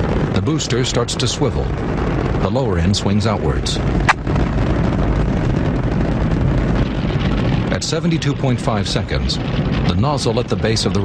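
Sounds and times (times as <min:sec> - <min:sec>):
rocket engine rumble: 0:00.0 - 0:11.0.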